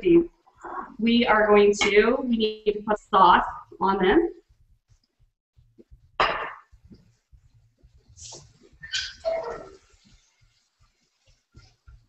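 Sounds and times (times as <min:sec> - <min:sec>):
paper towel rustling: 0:06.9 - 0:12.0.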